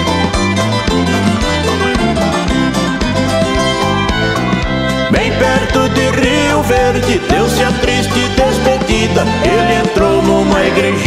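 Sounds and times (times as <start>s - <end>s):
acoustic guitar: 0.0s - 11.0s
viola caipira: 0.0s - 11.0s.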